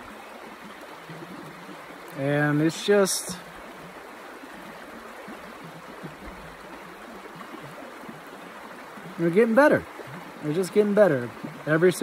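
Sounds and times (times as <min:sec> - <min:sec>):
creek flowing water: 0:00.0 - 0:12.0.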